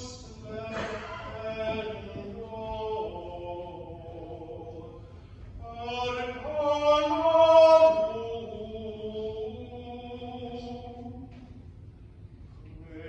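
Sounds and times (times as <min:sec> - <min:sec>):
person chanting liturgy: 0:00.0 - 0:11.5.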